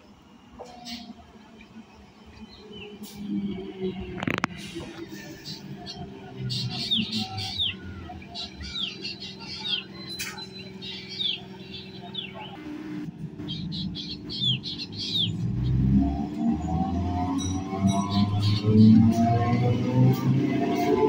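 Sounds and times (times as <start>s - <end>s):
electric train approaching: 0.0s - 21.0s
birds chirping: 5.0s - 19.8s.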